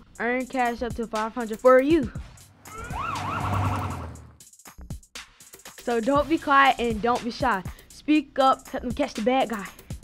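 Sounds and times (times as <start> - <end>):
police siren whoop and yelp: 2.7 - 4.3.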